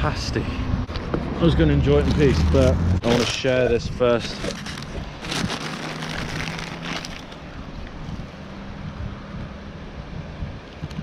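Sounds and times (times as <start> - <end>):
traffic engine hum: 0.0 - 11.0
paper bag crackling: 2.0 - 7.5
wind on microphone: 7.5 - 11.0.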